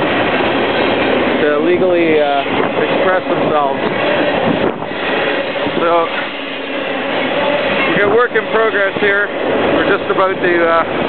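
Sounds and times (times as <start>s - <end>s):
freight train running on tracks: 0.0s - 11.0s.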